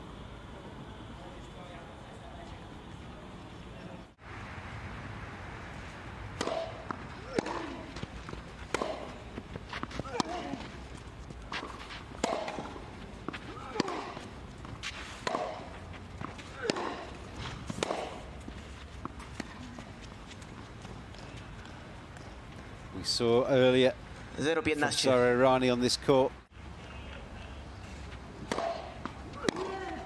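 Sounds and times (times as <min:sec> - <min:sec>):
racquet hitting tennis ball: 0:06.3 - 0:10.6, 0:11.6 - 0:18.4, 0:28.4 - 0:30.0.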